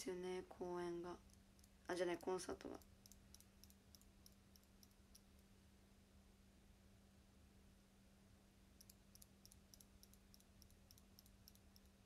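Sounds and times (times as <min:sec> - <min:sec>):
faint steady hum: 0:00.0 - 0:12.0
eyelash curler clicking: 0:01.2 - 0:05.4, 0:08.8 - 0:12.0.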